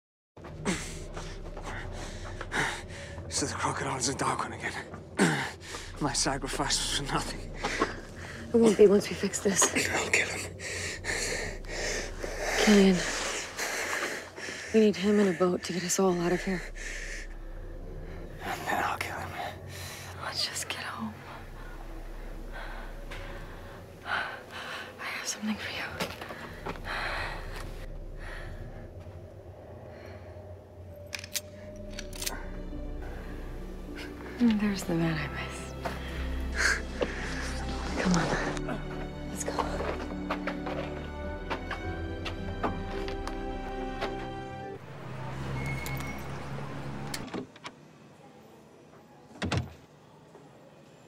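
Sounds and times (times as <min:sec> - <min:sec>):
man and woman whispering: 0:03.2 - 0:11.3, 0:18.4 - 0:21.5.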